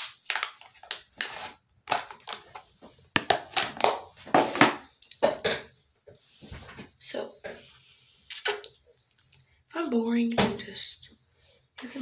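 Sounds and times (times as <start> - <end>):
plastic packaging crinkling: 0.0 - 2.6.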